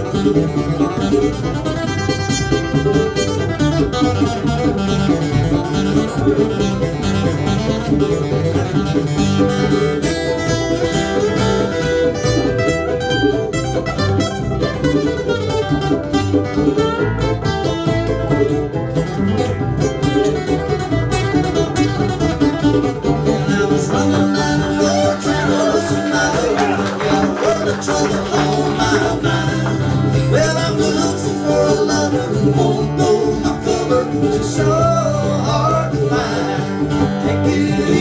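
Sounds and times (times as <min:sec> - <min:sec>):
acoustic guitar picking: 0:00.0 - 0:38.0
banjo: 0:00.0 - 0:38.0
fiddle: 0:00.0 - 0:38.0
mandolin: 0:00.0 - 0:38.0
upright bass: 0:00.0 - 0:38.0.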